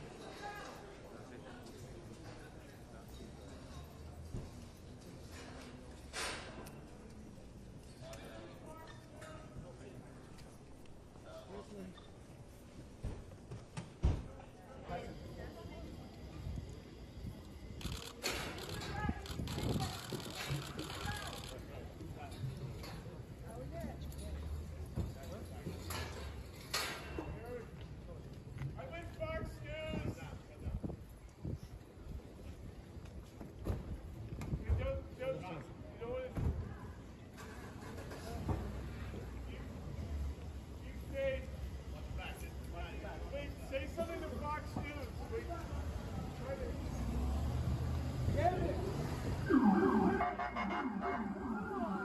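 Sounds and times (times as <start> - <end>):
people talking on street: 0.0 - 52.0
police siren yelping: 49.4 - 52.0.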